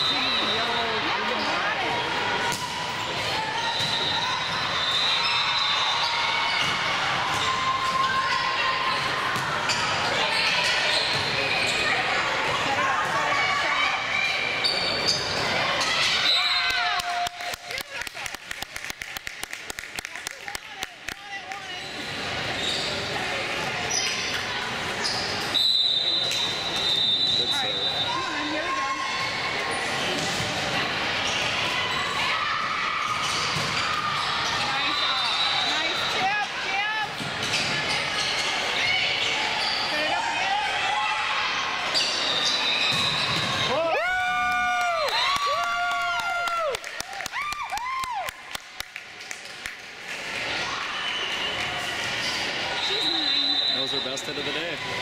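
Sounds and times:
sneakers squeaking on court: 8.9 - 12.1, 14.5 - 16.4, 21.6 - 23.2, 23.8 - 28.5, 37.1 - 40.1, 41.9 - 43.7.

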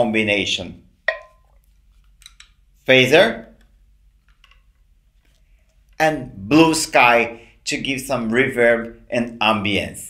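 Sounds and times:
man talking: 0.0 - 0.8, 2.8 - 3.6, 6.0 - 10.0.

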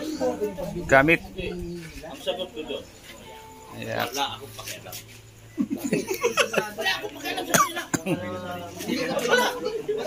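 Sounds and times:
voices of small group: 0.0 - 10.0
person coughing: 7.5 - 8.1.

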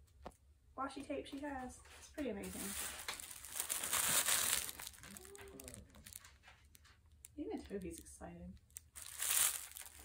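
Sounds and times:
gift wrapping paper crinkling: 2.1 - 10.0.

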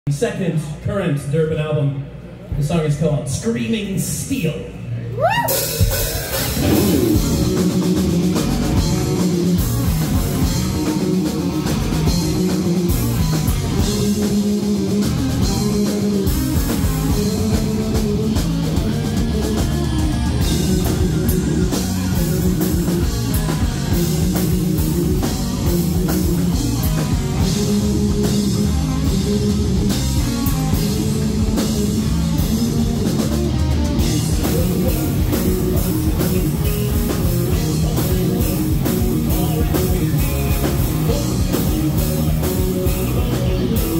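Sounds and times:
bass guitar: 0.1 - 43.9
electric guitar: 5.1 - 43.9
drum kit: 5.2 - 43.9.

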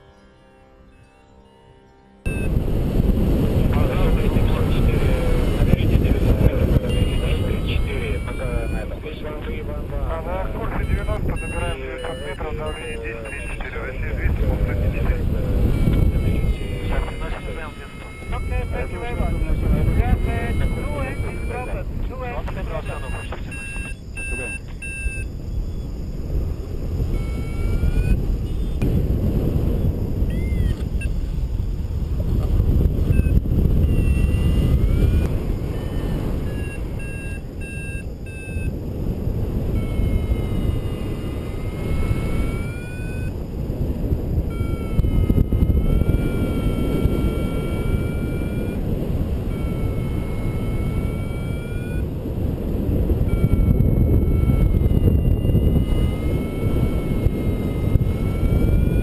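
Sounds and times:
wind on microphone: 2.2 - 59.0
variometer beeping: 2.3 - 2.7, 3.6 - 59.0.

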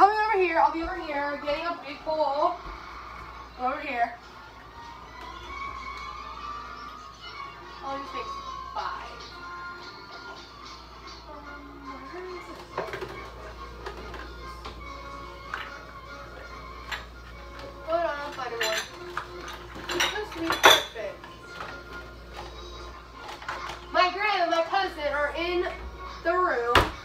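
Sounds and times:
dishes clattering and clinking: 12.5 - 14.8, 16.8 - 22.6.

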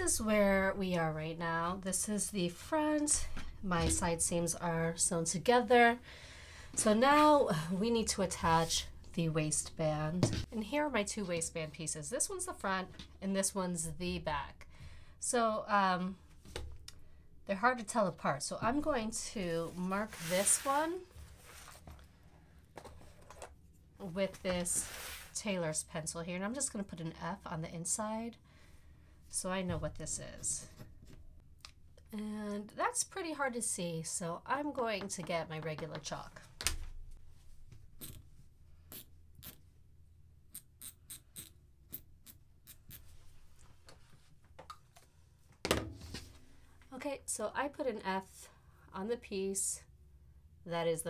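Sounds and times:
chalk scratching on fabric: 19.7 - 21.0.

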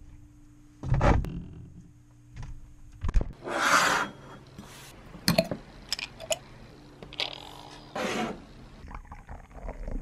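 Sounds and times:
cardboard scraping on table: 8.0 - 8.4.

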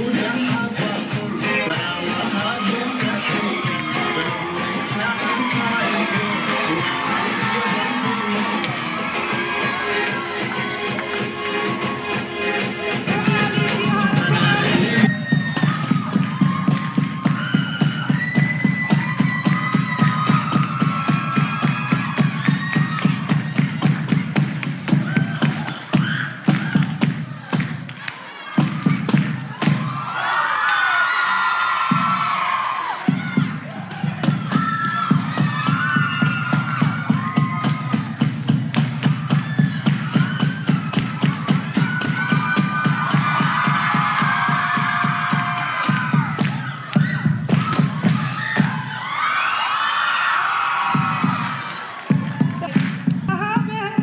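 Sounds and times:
dance music with fast beat: 0.0 - 28.0, 28.6 - 30.2, 31.9 - 49.1, 50.8 - 54.0
crowd cheering and whooping: 0.0 - 54.0
rapid hand clapping: 2.9 - 11.6, 18.9 - 29.8, 31.6 - 48.9, 50.4 - 53.2.

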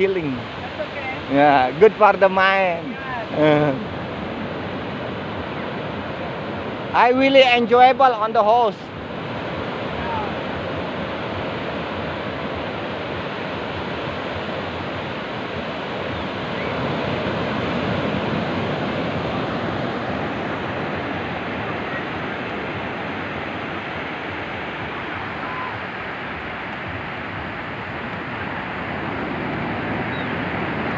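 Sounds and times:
ocean surf breaking on beach: 0.0 - 30.9.

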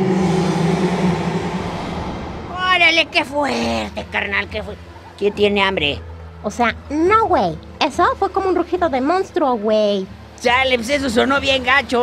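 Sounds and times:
monster roar: 0.0 - 4.0.

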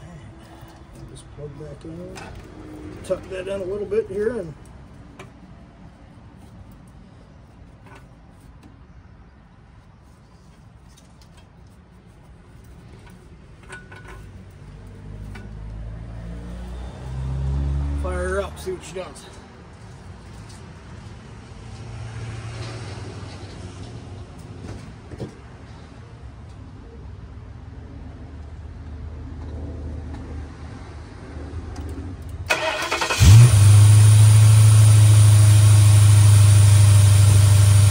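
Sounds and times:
vehicle passing rumble: 0.0 - 7.4, 14.3 - 25.0.

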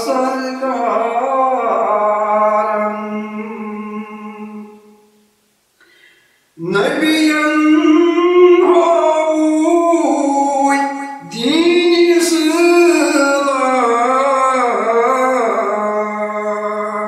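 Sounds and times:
singer breathing: 5.8 - 6.6
man singing long wavering notes: 6.6 - 17.0.

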